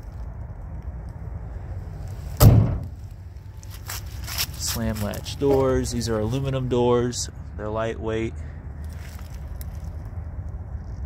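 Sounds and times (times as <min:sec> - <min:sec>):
steady low rumble: 0:00.0 - 0:11.0
metal storage door slamming: 0:02.4 - 0:03.0.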